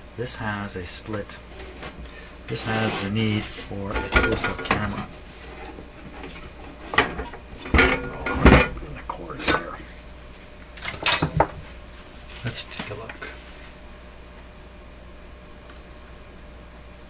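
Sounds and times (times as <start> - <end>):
metal knocks and clanks: 3.8 - 5.1, 6.2 - 8.9.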